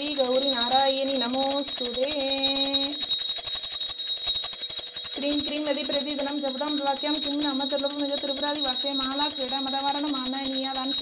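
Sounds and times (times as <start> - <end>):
hand bell ringing rapidly: 0.0 - 11.0.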